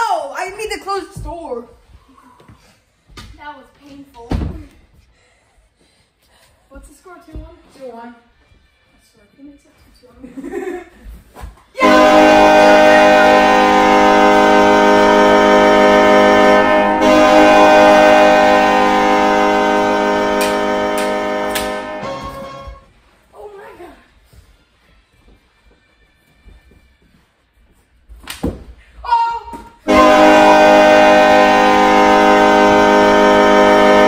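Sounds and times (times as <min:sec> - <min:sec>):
goal horn sounding: 0:11.8 - 0:22.9, 0:29.8 - 0:34.0.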